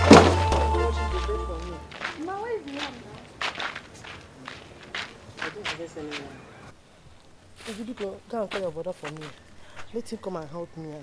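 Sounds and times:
footsteps on dirt: 0.0s - 11.0s.

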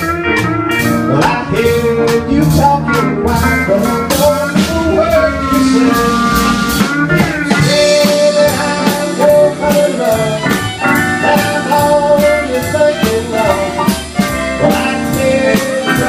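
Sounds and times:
western swing band playing: 0.0s - 16.0s.

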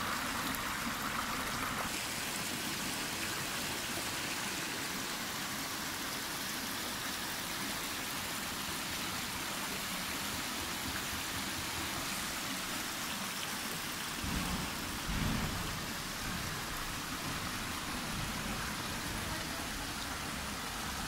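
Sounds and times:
stream rushing over rock: 0.0s - 21.0s.

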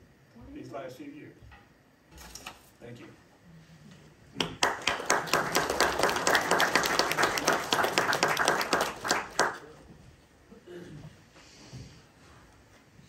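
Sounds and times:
audience applauding: 4.4s - 9.8s.

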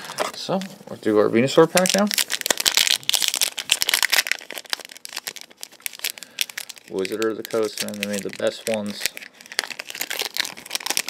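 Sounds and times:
foil wrapper crinkling: 1.6s - 11.0s.

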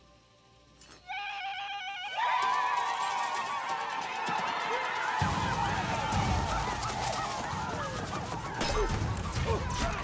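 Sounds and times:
people trilling war cries: 1.0s - 10.0s.

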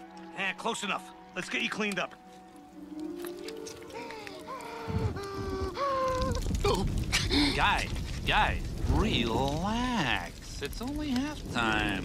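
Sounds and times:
orchestral film score: 0.0s - 6.0s
deep rumble: 4.9s - 12.0s.

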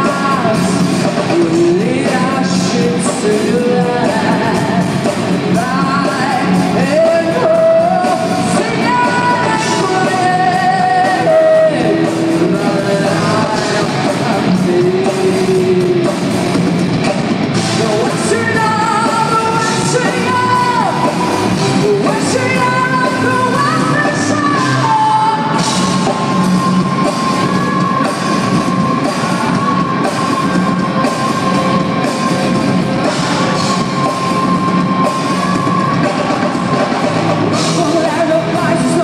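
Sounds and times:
woman singing: 0.0s - 16.2s, 17.8s - 39.0s
bass guitar: 0.0s - 39.0s
drums: 0.0s - 39.0s.

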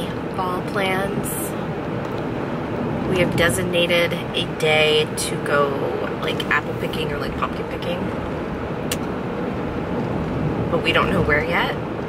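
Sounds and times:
car road and engine noise: 0.0s - 12.0s
sharp click: 8.9s - 9.1s.

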